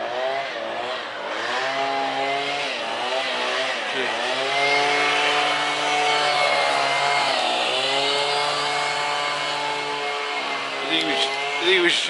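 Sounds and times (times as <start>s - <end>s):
engine running: 0.0s - 12.0s.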